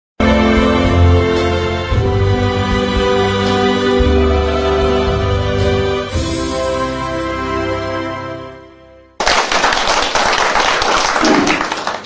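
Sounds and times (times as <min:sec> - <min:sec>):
audience applauding: 0:09.2 - 0:12.0.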